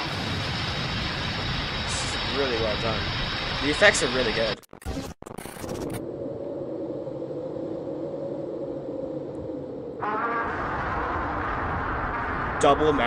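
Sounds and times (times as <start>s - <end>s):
low steady rumble: 6.0s - 13.0s.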